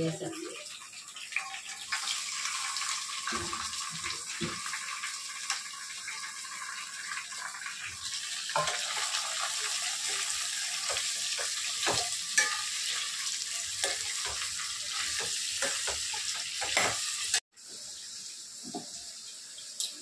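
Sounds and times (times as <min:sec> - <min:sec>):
vegetables sizzling in a pan: 0:00.0 - 0:20.0
spoon scraping and clinking on pan: 0:08.5 - 0:17.4.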